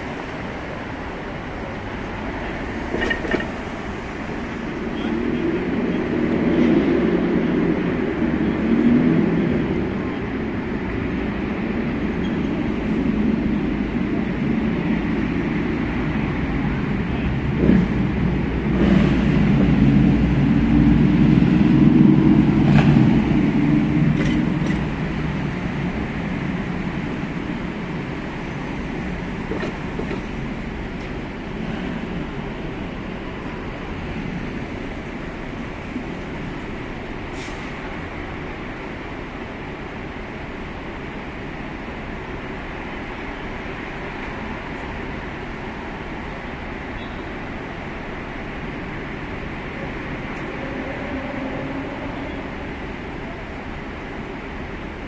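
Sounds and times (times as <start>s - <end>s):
cars driving past: 0.0s - 39.6s.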